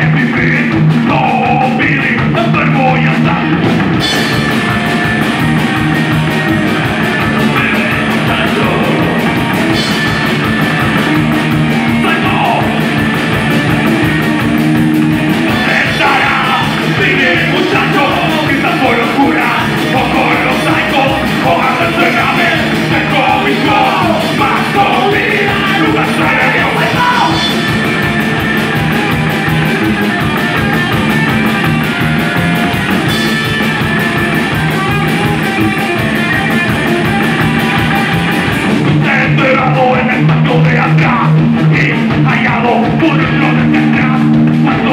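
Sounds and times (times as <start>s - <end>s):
drum kit fast beat: 0.0s - 44.9s
electric guitar: 0.0s - 44.9s
upright double bass: 0.0s - 44.9s.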